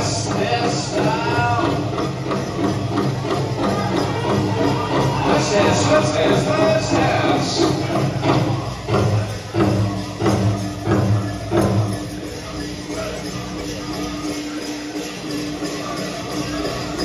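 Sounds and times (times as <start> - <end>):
jingling of regalia: 0.0 - 17.0.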